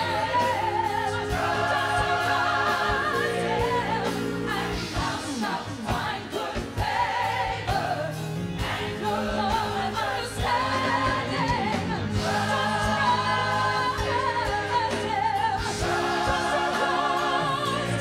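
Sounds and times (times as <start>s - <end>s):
choir singing: 0.0s - 18.0s
woman singing gospel lead: 9.0s - 18.0s.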